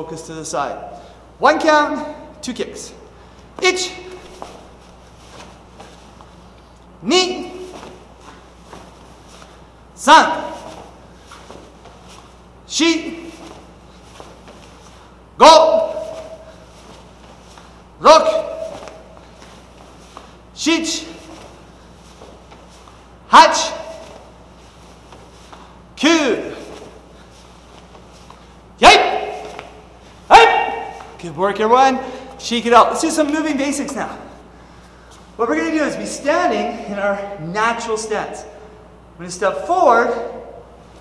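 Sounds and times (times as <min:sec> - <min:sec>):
bare feet thudding on mats: 0:03.5 - 0:06.4, 0:07.4 - 0:09.6, 0:10.3 - 0:12.5, 0:13.2 - 0:15.1, 0:15.8 - 0:20.4, 0:21.2 - 0:23.1, 0:26.5 - 0:31.2
cloth swishing: 0:03.6 - 0:31.3
man shouting sharply: 0:10.0 - 0:10.8, 0:15.4 - 0:16.5, 0:18.0 - 0:19.0, 0:23.3 - 0:24.2, 0:28.8 - 0:34.3.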